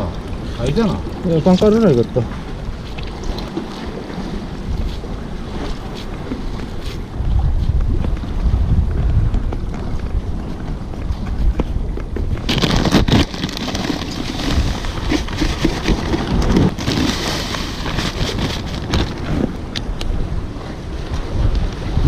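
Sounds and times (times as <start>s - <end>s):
waves washing against concrete: 0.0s - 22.0s
wind buffeting microphone: 0.0s - 22.0s.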